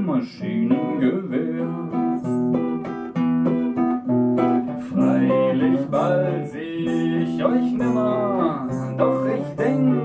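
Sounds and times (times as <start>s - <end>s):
two guitars playing: 0.0s - 10.0s.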